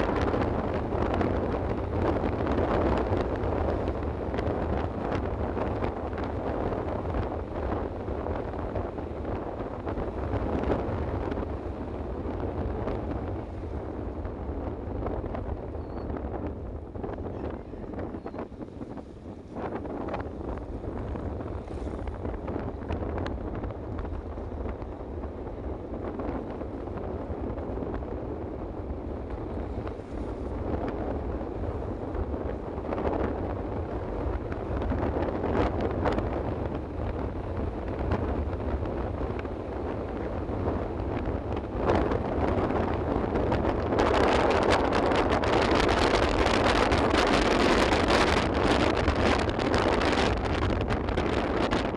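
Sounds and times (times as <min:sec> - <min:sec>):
road noise: 0:00.0 - 0:51.9
wind rushing over microphone: 0:00.0 - 0:51.9.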